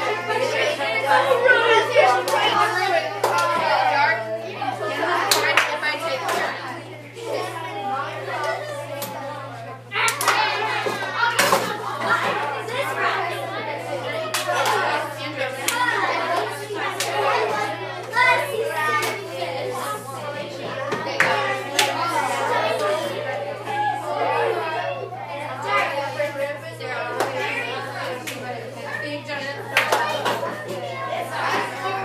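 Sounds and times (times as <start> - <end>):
children talking at once: 0.0 - 32.0.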